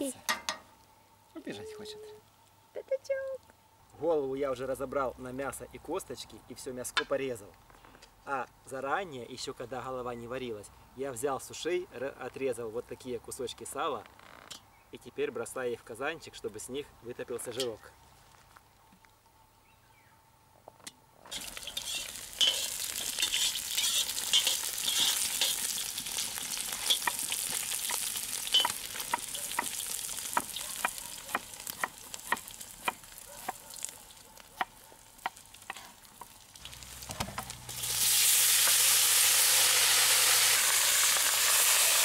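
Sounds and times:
fat sizzling and popping: 21.2s - 42.0s.

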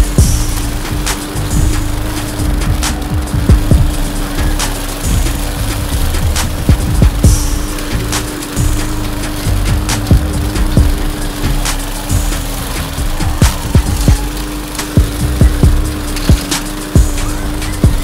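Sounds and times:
lawn mower humming: 0.0s - 18.0s
mower blade cracking sticks: 0.0s - 18.0s.

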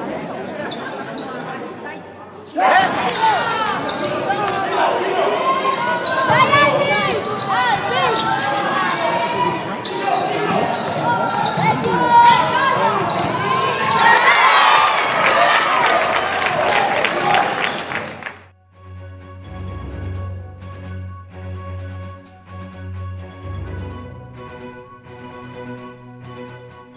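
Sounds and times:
shoes squeaking on court: 0.6s - 1.6s, 2.8s - 4.7s, 5.7s - 14.1s
basketball bouncing: 10.5s - 14.0s.

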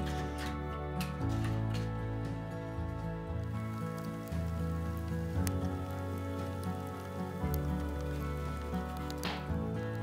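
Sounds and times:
background music with low notes: 0.0s - 10.0s.

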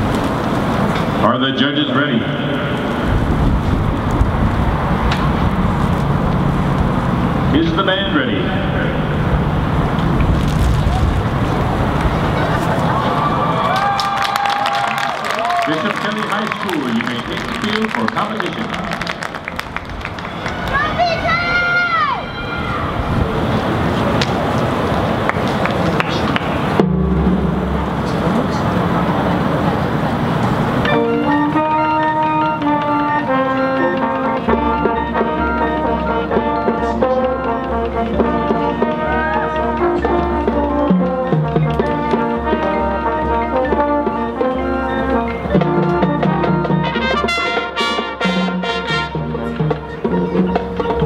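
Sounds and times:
steady noisy wash: 0.0s - 36.9s
low rumbling background noise: 0.0s - 47.3s
marching band playing: 0.0s - 51.0s
announcer speaking: 1.2s - 2.7s, 7.5s - 9.2s, 15.5s - 19.2s
low drone: 2.2s - 13.6s, 23.1s - 40.5s.

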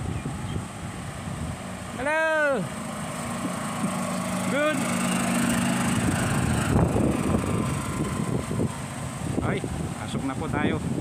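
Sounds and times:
utility cart engine humming: 0.0s - 11.0s
wind buffeting microphone: 0.0s - 11.0s.

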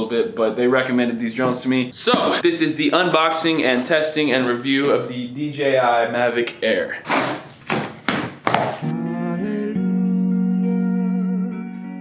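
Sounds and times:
scissor blade slitting tape: 7.1s - 7.8s
guitar music: 8.8s - 12.0s.

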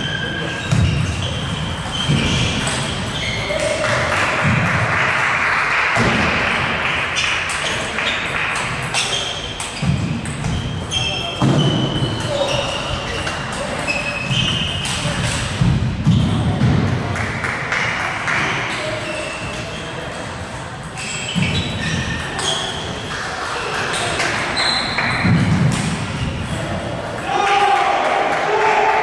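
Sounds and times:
short high squeaks: 0.0s - 3.7s, 8.9s - 15.1s, 20.9s - 23.0s, 23.9s - 25.2s.

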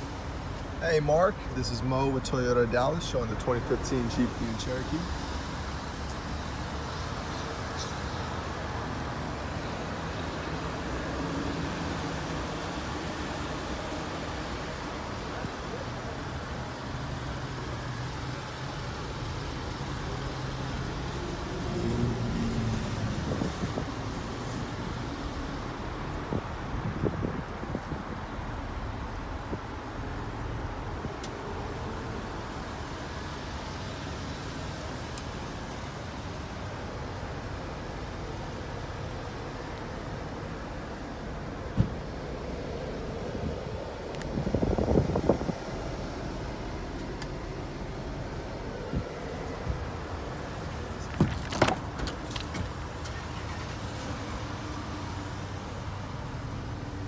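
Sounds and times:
traffic noise: 0.0s - 57.0s
vehicle engine humming: 0.0s - 57.0s
rustling and knocking from handling: 51.0s - 52.8s.

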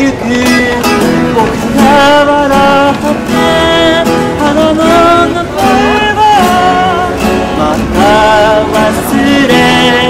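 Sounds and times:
man singing: 0.0s - 10.0s
strummed acoustic guitar: 0.0s - 10.0s.

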